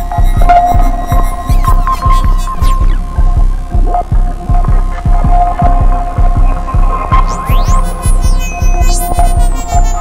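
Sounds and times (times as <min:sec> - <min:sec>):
throbbing low pulse: 0:00.0 - 0:10.0.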